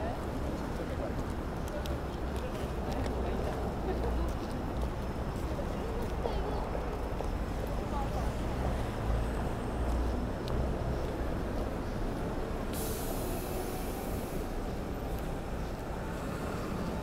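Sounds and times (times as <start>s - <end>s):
traffic rumble: 0.0s - 17.0s.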